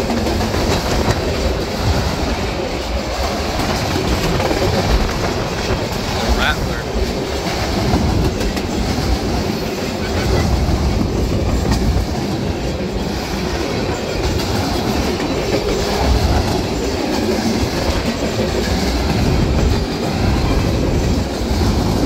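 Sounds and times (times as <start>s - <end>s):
empty freight cars rattling: 0.0s - 22.0s
steel wheels rumbling on rail: 0.0s - 22.0s
wheels clacking over rail joints: 0.0s - 22.0s.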